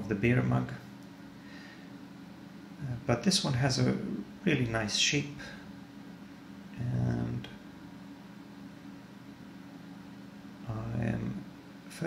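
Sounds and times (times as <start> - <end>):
faint room hiss: 0.0 - 12.0
man saying um: 6.8 - 7.5, 10.7 - 11.4.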